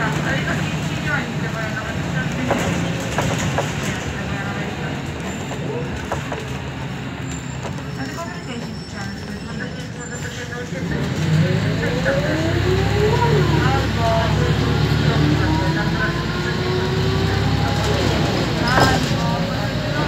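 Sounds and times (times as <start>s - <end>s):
bus diesel engine running: 0.0s - 20.0s.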